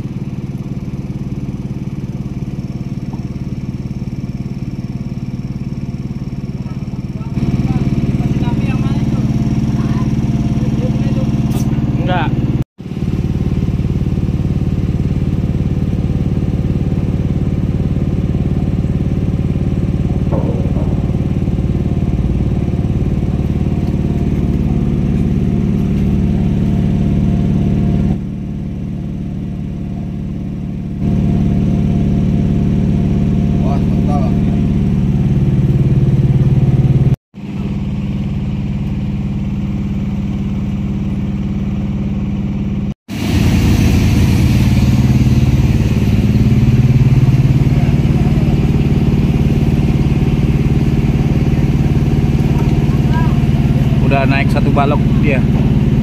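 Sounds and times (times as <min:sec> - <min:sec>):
machine motor droning: 0:00.0 - 0:56.0.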